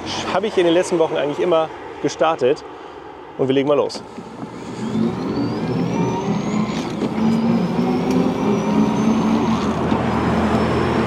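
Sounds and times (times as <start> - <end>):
road and wind noise: 0.0 - 11.0
drivetrain noise: 4.0 - 11.0
electric motor whining: 4.0 - 11.0.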